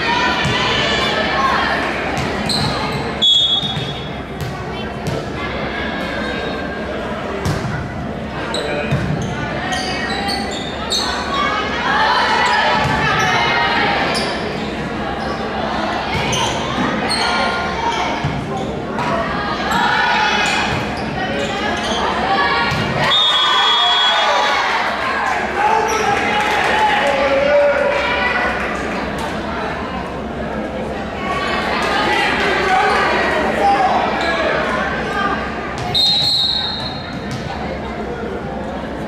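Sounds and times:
referee's whistle: 3.2 - 3.9, 23.0 - 24.3, 35.9 - 37.1.

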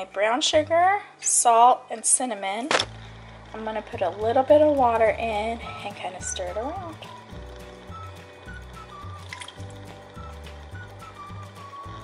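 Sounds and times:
background music: 0.0 - 12.0
water poured onto sugar: 9.2 - 10.0.

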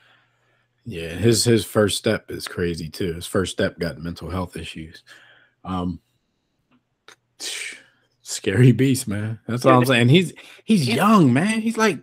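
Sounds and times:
breath into a microphone: 0.0 - 0.8, 5.1 - 6.3.

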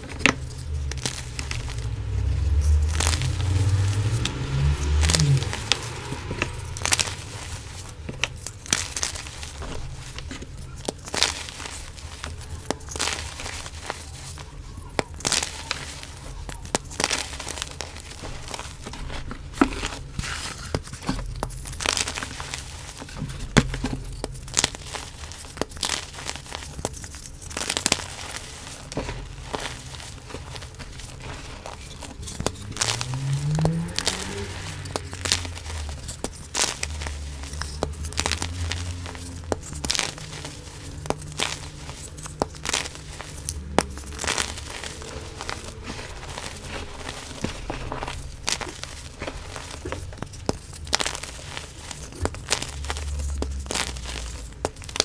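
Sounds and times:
powder crunching and crackling: 0.0 - 55.0.

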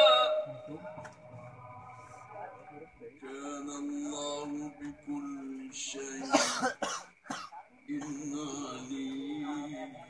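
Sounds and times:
sung recitation tone: 0.0 - 6.8, 7.8 - 10.0
person coughing: 6.2 - 7.5.

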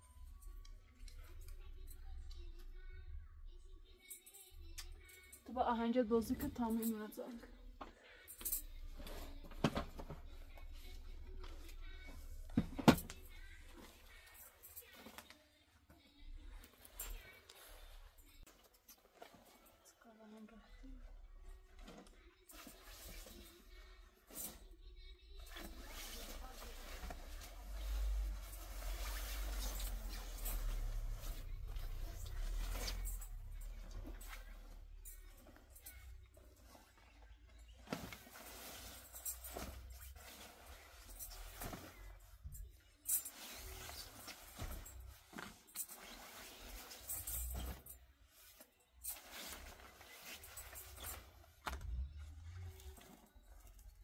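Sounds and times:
clothing rustling: 5.1 - 54.0.

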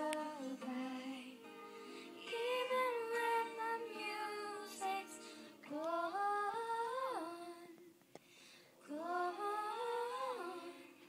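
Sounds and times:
girl singing unaccompanied: 0.0 - 7.9, 8.8 - 11.0.

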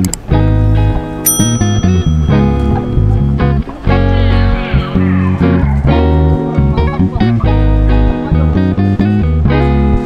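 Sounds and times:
guitar and bass music: 0.0 - 10.0
bright bell ding: 1.2 - 4.2.

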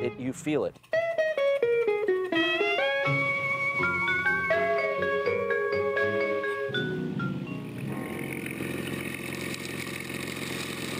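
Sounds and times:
motorboat engine running: 5.5 - 10.9.

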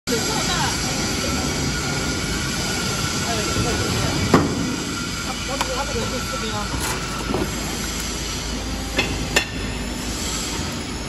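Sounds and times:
machine hum and hiss: 0.1 - 11.0.

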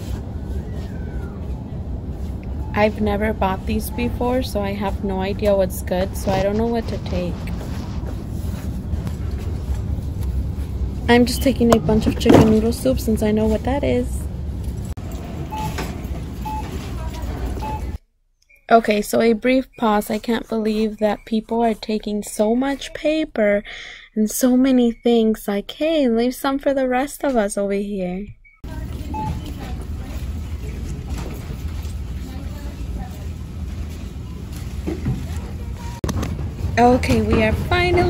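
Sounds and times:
low rumble of store noise: 0.0 - 38.0
indistinct chatter of shoppers: 15.2 - 18.0, 28.6 - 38.0
barcode scanner beeps: 15.5 - 15.8, 16.4 - 16.8, 17.6 - 18.0, 28.4 - 29.8.

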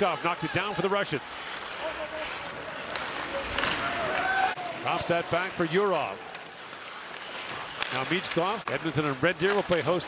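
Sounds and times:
skates on ice: 0.0 - 10.0
crowd murmur: 0.4 - 4.9.

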